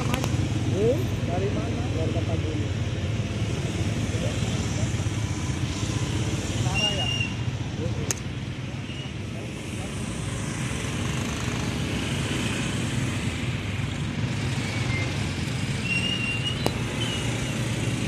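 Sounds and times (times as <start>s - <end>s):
low rumble of traffic: 0.0s - 18.0s
short high squeaks: 15.8s - 17.7s.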